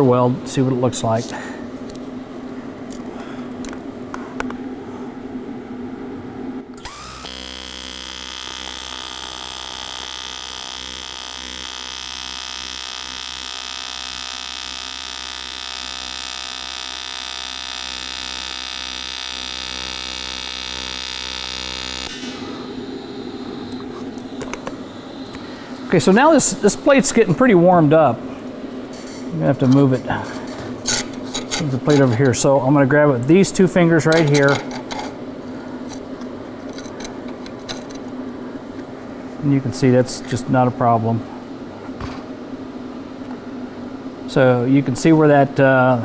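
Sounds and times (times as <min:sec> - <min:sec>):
welding arc buzzing: 0:06.7 - 0:35.2
welding arc striking crack: 0:06.8 - 0:22.5.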